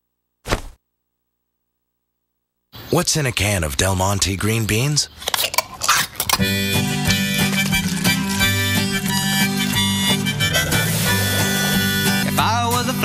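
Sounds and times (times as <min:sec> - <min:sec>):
harmonica music: 0:06.3 - 0:13.0.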